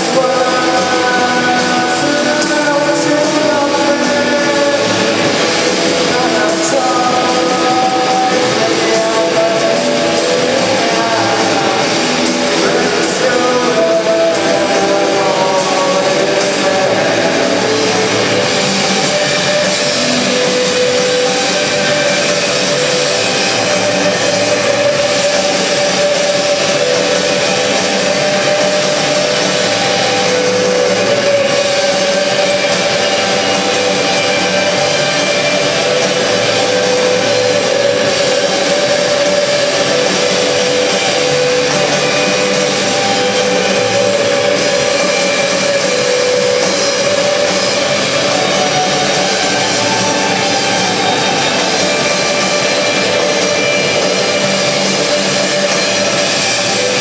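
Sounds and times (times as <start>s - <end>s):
distorted electric guitar wall: 0.0s - 57.0s.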